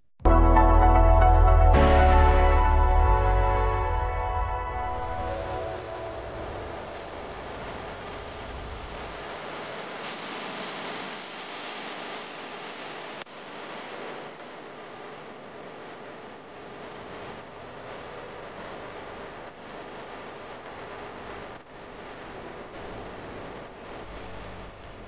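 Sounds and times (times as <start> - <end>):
sustained music notes: 0.3 - 7.4
steady rushing noise: 4.7 - 14.4.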